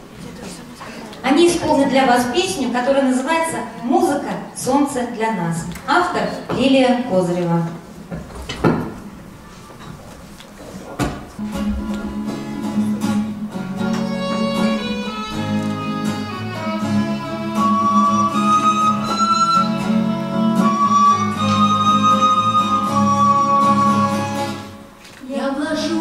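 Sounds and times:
acoustic guitar chords: 11.4s - 25.0s
violin melody: 11.6s - 24.9s.

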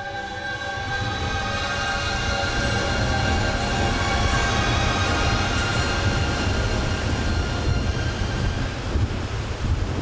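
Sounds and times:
held musical notes: 0.0s - 8.8s.

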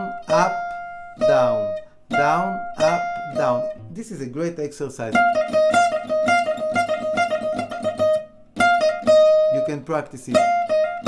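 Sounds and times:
jazz guitar fast trill: 0.0s - 11.0s.

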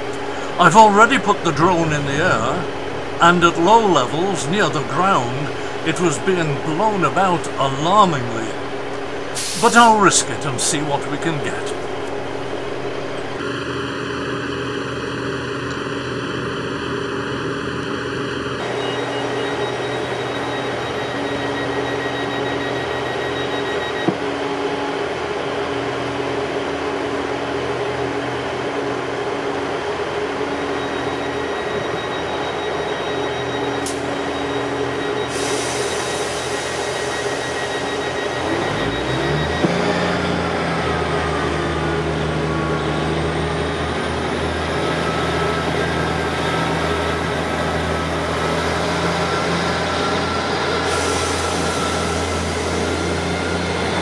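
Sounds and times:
train diesel engines idling: 0.0s - 54.0s
train engines revving: 0.0s - 54.0s.

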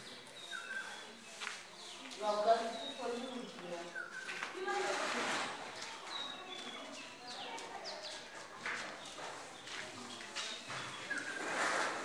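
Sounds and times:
faint bird chirps: 0.0s - 4.4s
footsteps scuffing on concrete: 0.1s - 11.4s.

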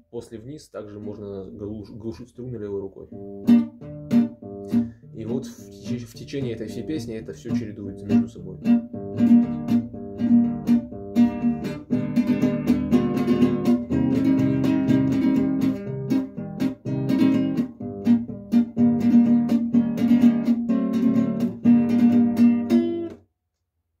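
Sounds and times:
classical guitar strumming: 0.9s - 23.2s
hand damping guitar strings: 3.1s - 23.2s.

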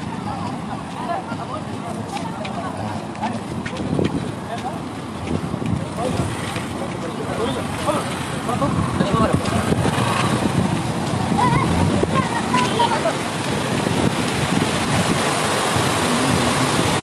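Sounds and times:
motorcycles passing: 0.0s - 17.0s
people's voices: 0.0s - 17.0s
wind buffeting microphone: 0.0s - 17.0s.

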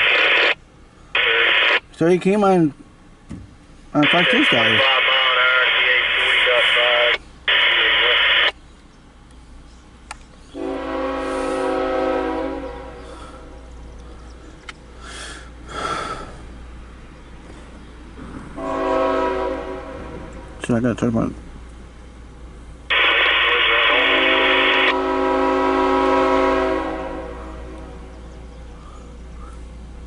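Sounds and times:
scanner radio transmission: 0.0s - 2.0s, 4.0s - 8.6s, 22.9s - 25.0s
locomotive air horn blast: 10.5s - 13.7s, 18.6s - 20.4s, 22.9s - 28.1s.

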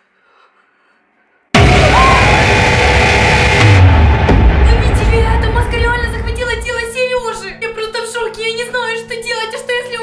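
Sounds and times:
horror music sting: 1.6s - 6.8s.

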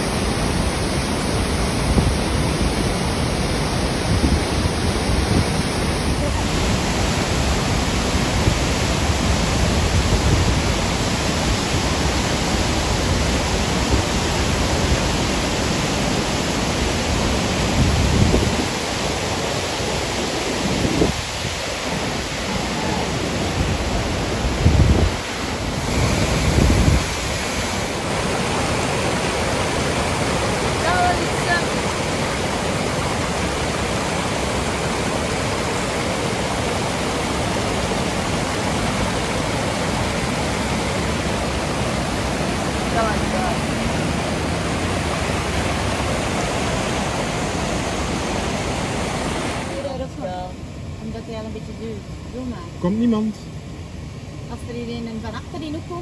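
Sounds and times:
wind buffeting microphone: 0.0s - 50.4s
waterfall and rapids rushing: 0.0s - 56.0s.

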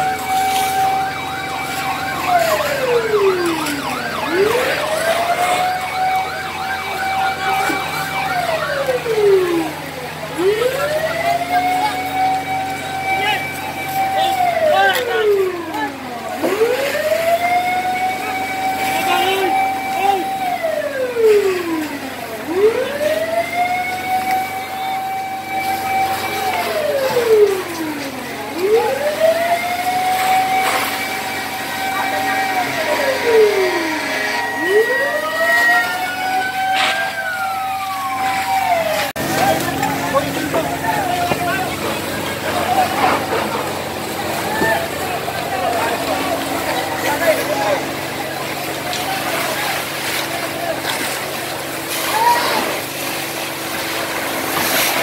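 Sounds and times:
fire engine siren wailing: 0.0s - 55.0s
commotion of voices: 1.5s - 23.5s, 24.2s - 53.0s.

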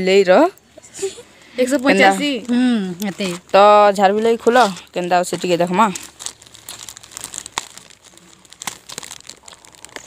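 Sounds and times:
plastic mailer bag crinkling: 1.8s - 10.0s.

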